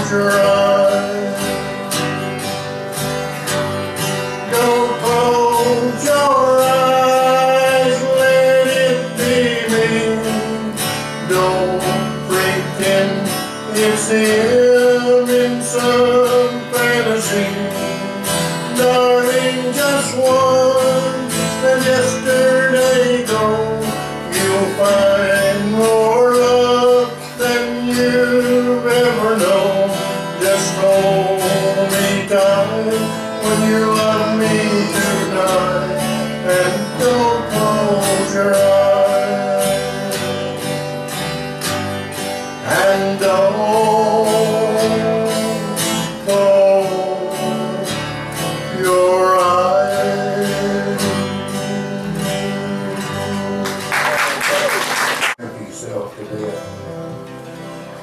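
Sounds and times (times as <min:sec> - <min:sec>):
strummed acoustic guitar: 0:00.0 - 0:58.0.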